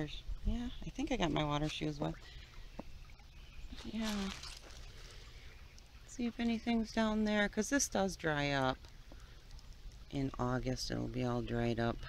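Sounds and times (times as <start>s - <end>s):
creek water over stones: 0.0s - 12.0s.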